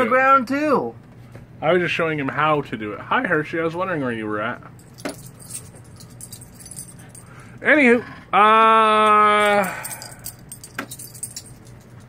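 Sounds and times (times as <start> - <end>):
collar tags jingling: 4.8 - 7.6, 8.9 - 12.0.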